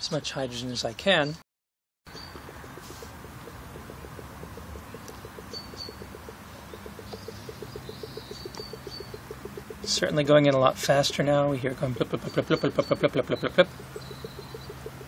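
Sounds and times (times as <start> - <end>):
faint bird chirps: 2.1 - 15.0.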